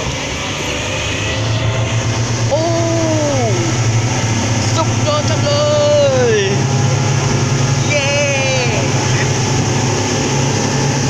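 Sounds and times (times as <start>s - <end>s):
drawn-out falling voice: 0.0s - 6.8s, 7.7s - 9.6s
rushing wind and water: 0.0s - 11.0s
speedboat engine droning: 0.0s - 11.0s.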